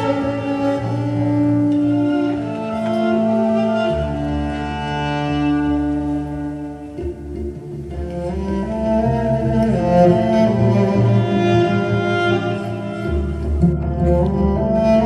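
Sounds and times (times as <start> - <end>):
electric cellos bowed: 0.0 - 15.0.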